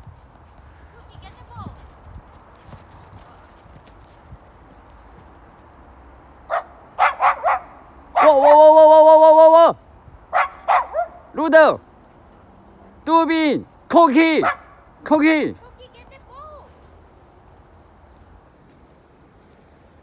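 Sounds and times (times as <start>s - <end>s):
dogs barking: 6.5s - 8.6s, 10.3s - 11.3s, 14.4s - 14.9s
long steady dog call: 6.5s - 9.5s.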